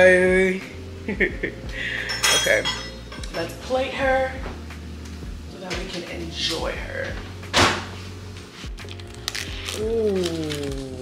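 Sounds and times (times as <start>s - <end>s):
dishes and cutlery rattling: 2.0s - 3.2s
dish clinking: 2.0s - 3.4s.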